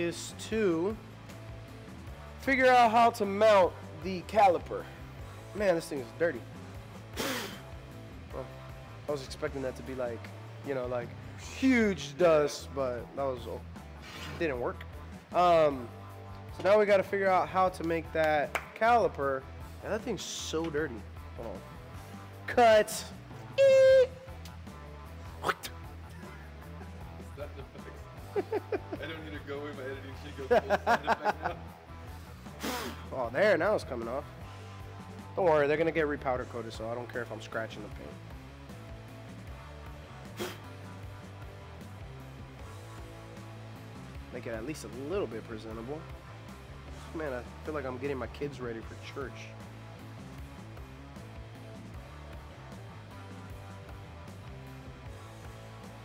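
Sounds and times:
background music: 0.0s - 56.0s
hard puff of breath: 7.1s - 7.7s, 14.0s - 14.4s, 32.2s - 33.1s, 40.3s - 40.8s
sharp breath: 7.2s - 7.7s, 32.5s - 33.1s
man's vocal bursts: 23.6s - 24.2s.

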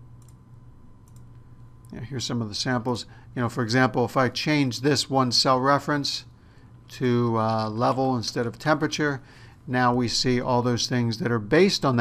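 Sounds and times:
low steady hum: 0.0s - 12.0s
computer mouse clicks: 0.2s - 0.4s, 1.0s - 2.0s.

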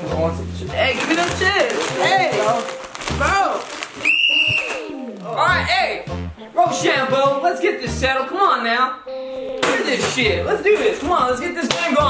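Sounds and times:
referee's whistle: 4.0s - 4.9s.

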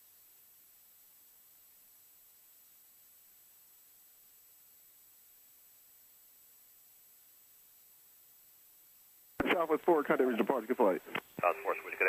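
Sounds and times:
radio voice through headset: 9.4s - 12.0s.

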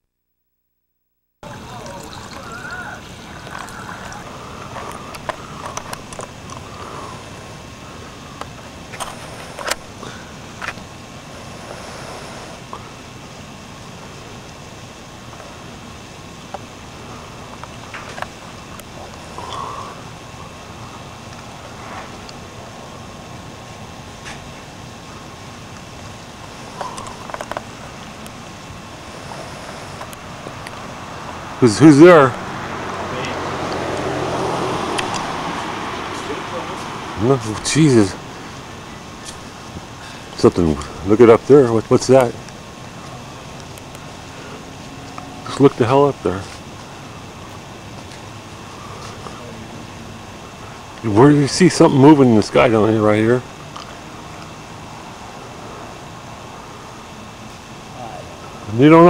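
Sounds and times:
background hiss: 0.0s - 59.0s
faint steady whine: 0.0s - 59.0s.

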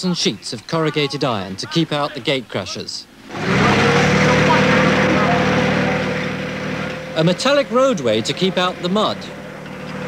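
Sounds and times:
lorry engine running: 3.2s - 10.0s.

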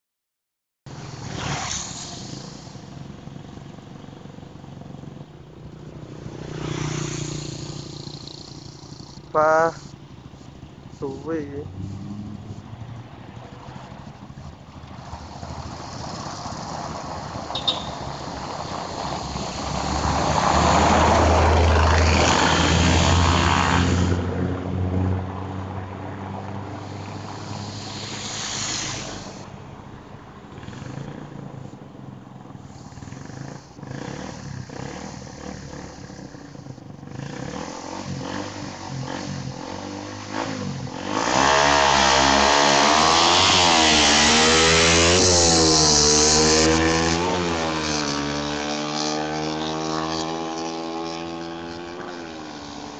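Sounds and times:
motorcycle engine revving: 0.9s - 52.9s.

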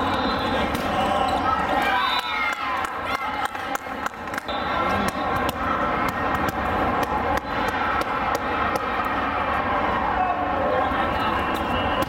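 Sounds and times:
overlapping voices in a hall: 0.0s - 12.0s
volleyballs being hit and bounced: 3.5s - 9.2s.

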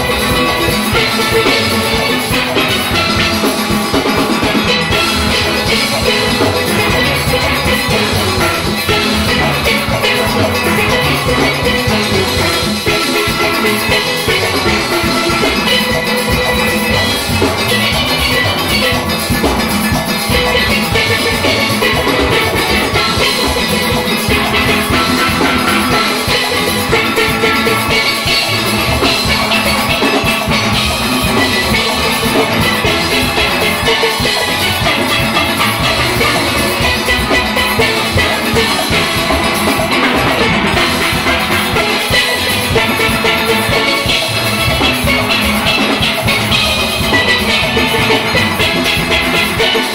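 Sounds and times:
drums and percussion rhythm: 0.0s - 49.9s
steel pans playing melody: 0.0s - 49.9s.

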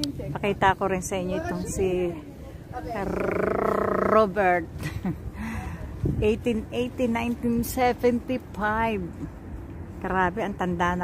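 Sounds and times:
woman speaking: 0.0s - 2.3s, 2.9s - 4.7s, 6.2s - 9.3s, 10.0s - 11.0s.

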